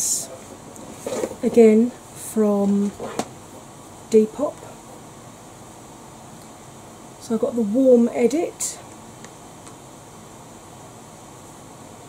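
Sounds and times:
electric fan hissing: 0:00.0 - 0:12.0.

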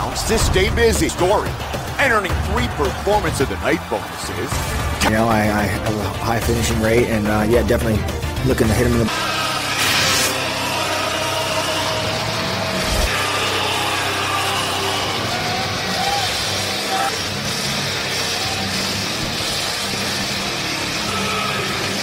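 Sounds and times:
crowd cheering and shouting: 0:00.0 - 0:07.4, 0:09.1 - 0:22.0.

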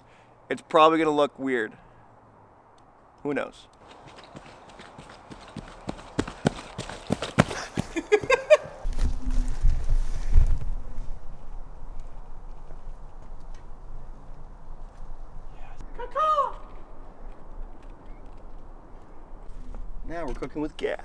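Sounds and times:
faint outdoor background: 0:00.0 - 0:21.0
running footsteps on dirt: 0:03.8 - 0:09.8
low rumble: 0:08.8 - 0:15.5.

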